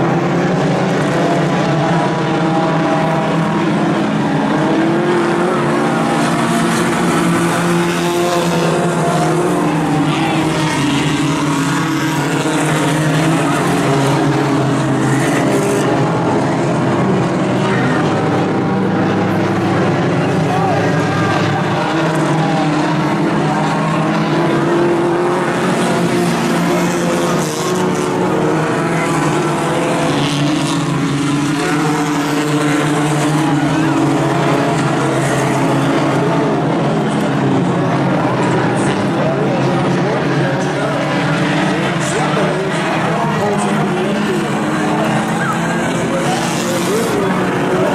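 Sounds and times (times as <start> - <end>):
race car engines droning: 0.0 - 47.9.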